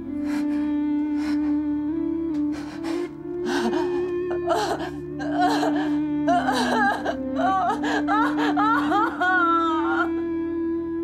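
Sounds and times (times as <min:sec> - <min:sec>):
soft sustained music score: 0:00.0 - 0:11.0
woman sobbing: 0:03.4 - 0:10.2.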